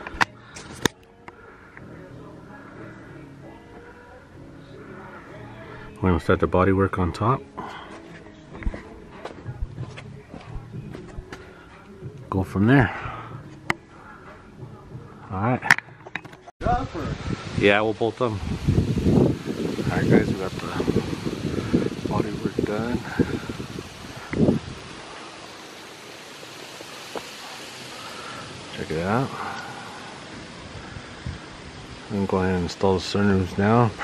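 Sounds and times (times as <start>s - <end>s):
outdoor background hiss: 0.0s - 34.0s
wind on microphone: 16.6s - 25.3s, 28.3s - 32.2s.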